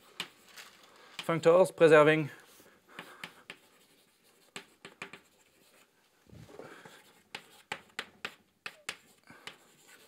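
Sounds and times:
chalk scratching on blackboard: 2.5 - 5.9, 6.9 - 10.0.

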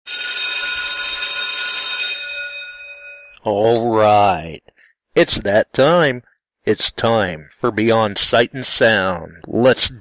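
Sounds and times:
alarm bell ringing: 0.1 - 3.5.

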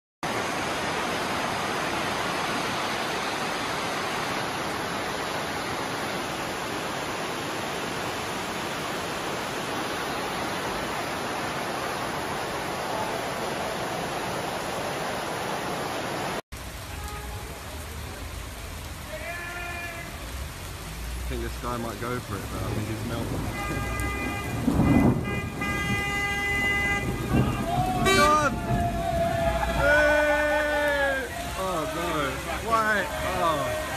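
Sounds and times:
floodwater rushing: 0.2 - 33.9.

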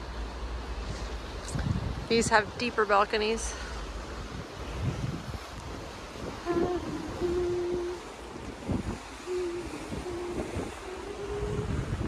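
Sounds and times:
rush of wind and water: 0.0 - 12.0
wind buffeting microphone: 0.0 - 12.0.

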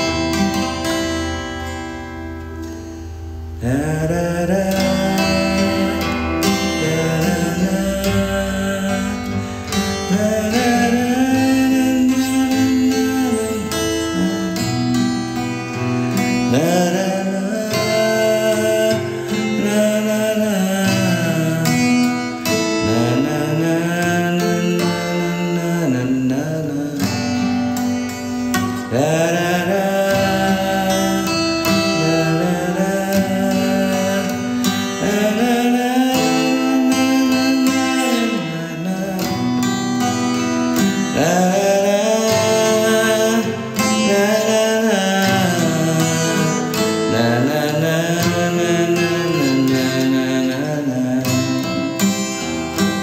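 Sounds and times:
acoustic guitar chords: 0.0 - 53.0.

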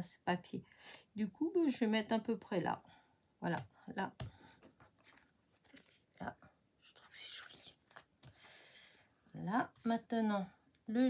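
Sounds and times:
paper rustling: 4.6 - 6.2.

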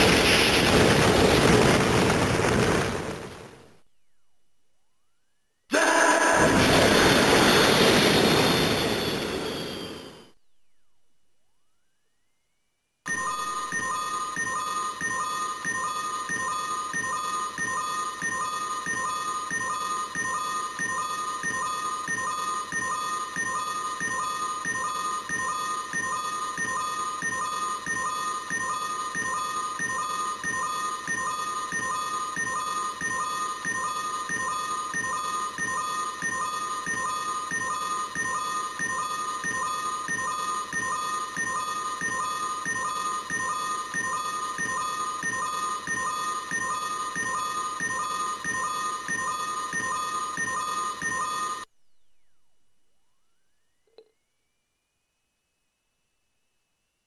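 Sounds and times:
toy looping electronic tones: 13.1 - 51.7.

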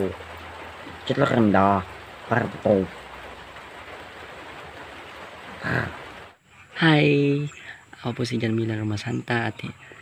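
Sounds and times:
faint recording hiss: 0.0 - 10.0.

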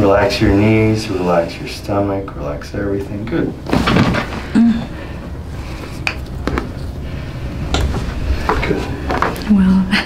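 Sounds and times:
spinal joints cracking: 5.9 - 7.0.

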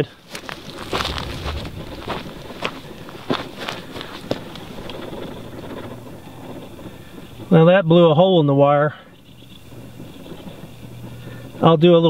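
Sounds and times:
footsteps on stony ground: 0.3 - 3.7
wind on microphone: 0.5 - 7.0.

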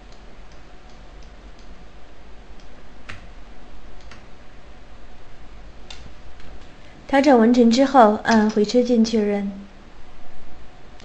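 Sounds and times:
low hum and hiss: 0.0 - 11.0
computer mouse clicks: 0.1 - 1.8, 4.0 - 4.3.

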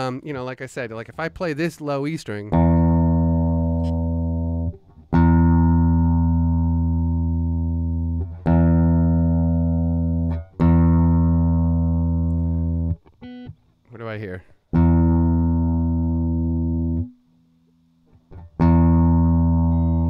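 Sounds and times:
electric guitar low string ringing: 2.5 - 13.6, 14.7 - 17.2, 18.2 - 20.0.

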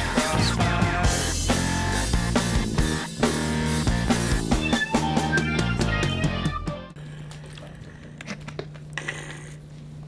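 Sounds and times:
low electrical hum: 7.0 - 10.0.

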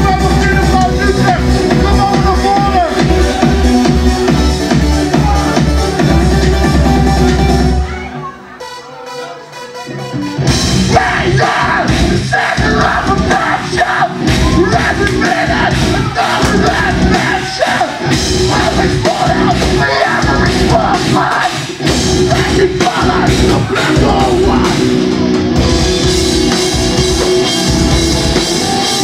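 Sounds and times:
drum kit: 0.0 - 29.0
distorted electric guitar: 9.5 - 29.0.

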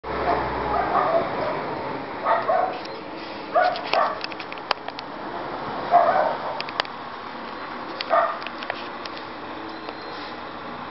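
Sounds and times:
dog barking: 0.2 - 2.8, 3.5 - 4.2, 5.9 - 6.6, 8.1 - 8.4.

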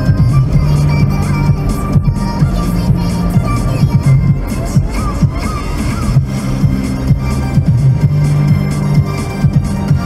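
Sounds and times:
electronic music on car radio: 0.0 - 10.0.

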